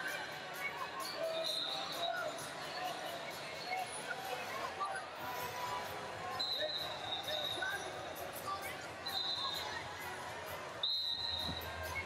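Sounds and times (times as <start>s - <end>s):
distant murmur of voices: 0.0s - 12.0s
shoes squeaking on mat: 11.2s - 12.0s.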